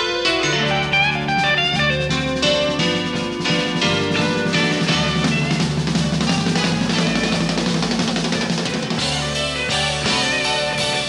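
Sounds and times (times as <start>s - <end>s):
drum kit: 0.0s - 11.0s
electric blues band: 0.0s - 11.0s
electric guitar lead: 0.0s - 11.0s.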